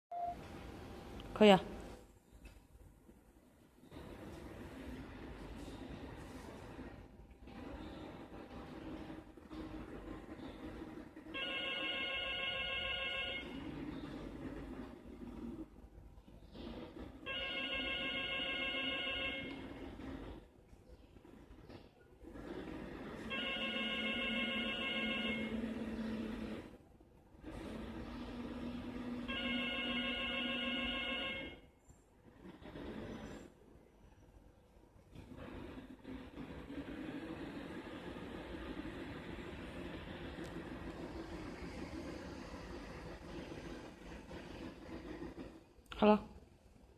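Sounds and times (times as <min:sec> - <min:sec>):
wheels rolling on tiled floor: 0:00.2 - 0:46.9.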